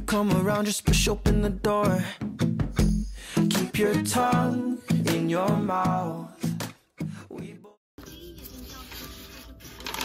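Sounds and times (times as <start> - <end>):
notebook page turning: 8.4 - 10.0.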